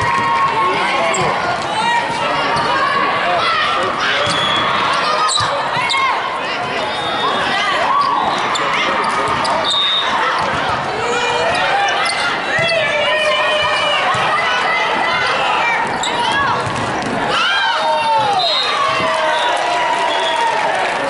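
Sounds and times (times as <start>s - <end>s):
court shoes squeaking: 0.0s - 3.0s, 4.0s - 14.4s, 15.0s - 17.3s
players and spectators calling: 0.0s - 21.0s.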